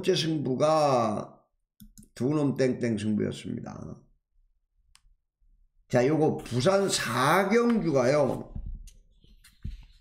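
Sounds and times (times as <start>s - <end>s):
man talking: 0.0s - 1.4s, 2.2s - 4.1s, 5.9s - 8.6s.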